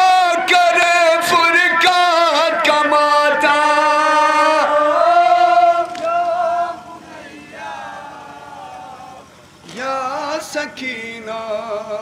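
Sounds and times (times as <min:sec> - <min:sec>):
man chanting a lament: 0:00.0 - 0:12.0.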